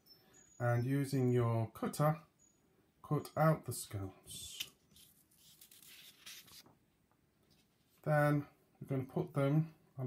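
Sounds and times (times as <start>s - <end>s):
paper rustling: 4.5s - 6.7s.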